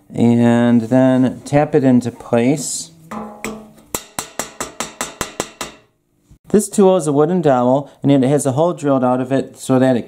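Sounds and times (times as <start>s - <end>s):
mallet tapping wooden dowel: 3.1s - 5.9s.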